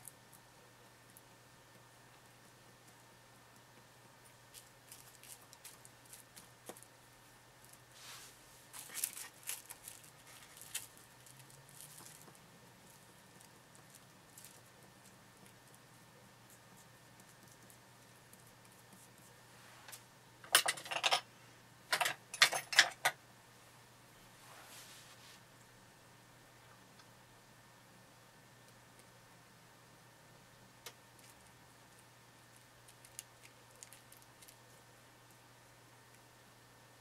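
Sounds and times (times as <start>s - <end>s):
plastic wrap crinkling: 4.4s - 6.9s, 8.7s - 15.9s, 31.2s - 31.5s, 32.9s - 34.6s.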